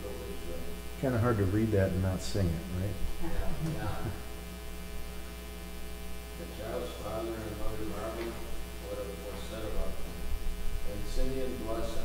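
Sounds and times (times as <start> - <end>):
electrical mains hum: 0.0 - 12.0
person laughing: 3.2 - 4.2.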